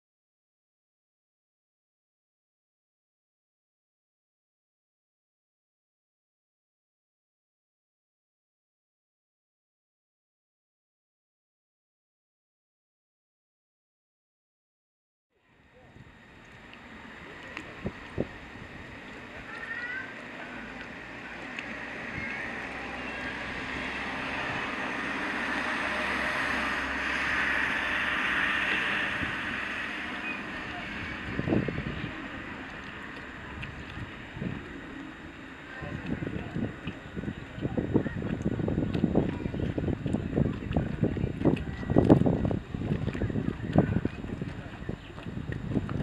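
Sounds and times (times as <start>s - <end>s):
water moving around boats: 15.4s - 46.0s
wind on microphone: 15.8s - 20.2s, 20.8s - 46.0s
water slapping: 15.9s - 46.0s.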